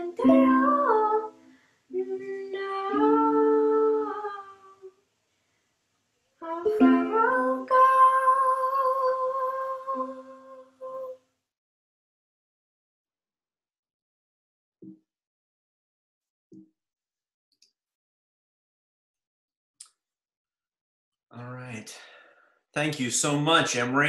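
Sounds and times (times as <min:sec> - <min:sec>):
girl singing: 0:00.0 - 0:05.0, 0:06.4 - 0:11.2
ukulele strumming: 0:06.6 - 0:07.6.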